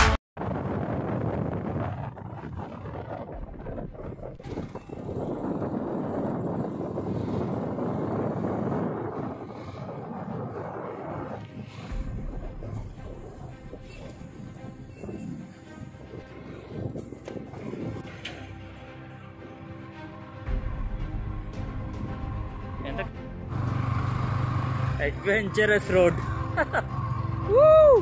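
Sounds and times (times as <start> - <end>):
wind rushing over microphone: 0.4 - 18.2
motorbike engine and road noise: 0.8 - 18.8, 22.0 - 28.0.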